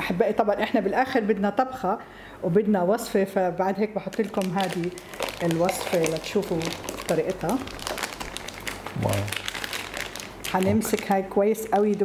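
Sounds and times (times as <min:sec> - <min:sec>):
plastic bag crinkling: 0:04.1 - 0:12.0.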